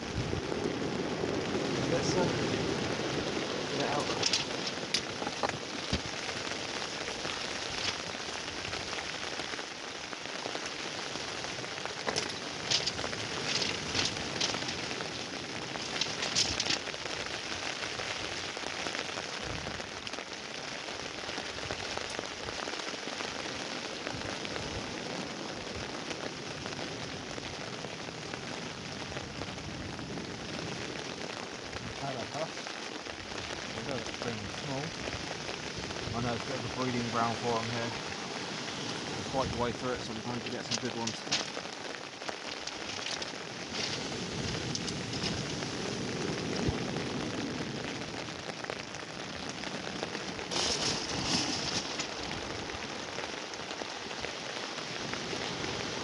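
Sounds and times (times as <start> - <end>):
rain falling on shelter: 0.0 - 56.0.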